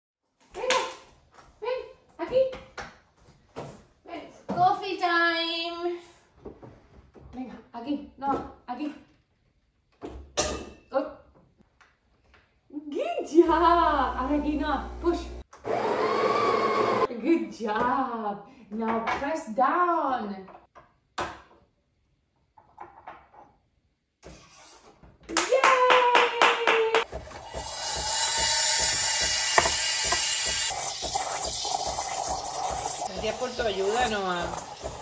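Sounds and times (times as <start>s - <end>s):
espresso machine grinding beans: 13.5s - 17.1s, 27.1s - 35.0s
voices: 33.1s - 34.6s.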